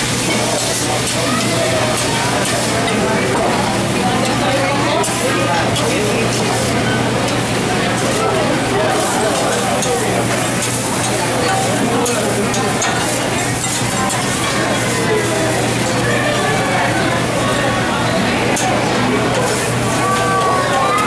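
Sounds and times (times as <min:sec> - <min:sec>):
food sizzling on a griddle: 0:00.0 - 0:21.0
restaurant chatter: 0:00.0 - 0:21.0.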